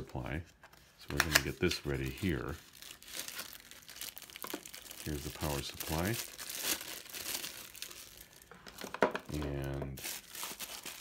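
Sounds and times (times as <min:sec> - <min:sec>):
plastic bag crinkling: 0:01.2 - 0:11.0.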